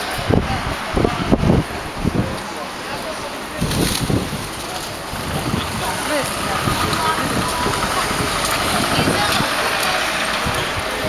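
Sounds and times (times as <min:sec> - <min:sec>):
many people talking: 0:00.0 - 0:11.0
vehicle engine noise: 0:00.0 - 0:11.0.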